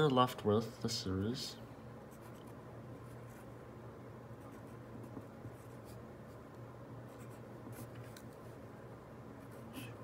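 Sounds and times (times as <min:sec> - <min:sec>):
pen scratching on paper: 0:04.4 - 0:06.4, 0:07.1 - 0:08.4.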